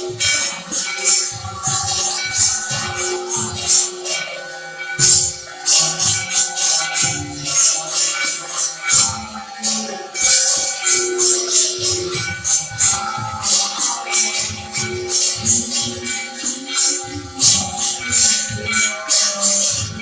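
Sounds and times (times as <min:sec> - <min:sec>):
hand cymbals and bells jingling: 0:00.0 - 0:20.0
held ringing tones: 0:00.0 - 0:20.0
low drum beats: 0:05.0 - 0:06.4, 0:10.2 - 0:16.2.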